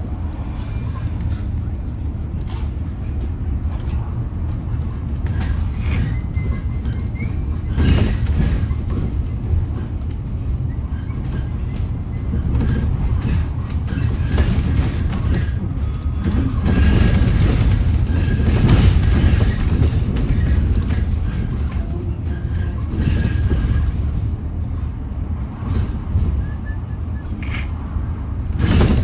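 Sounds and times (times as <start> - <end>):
bus body rattling: 0.0 - 29.0
bus road rumble: 0.0 - 29.0
loud bumps: 4.5 - 24.6, 28.3 - 29.0.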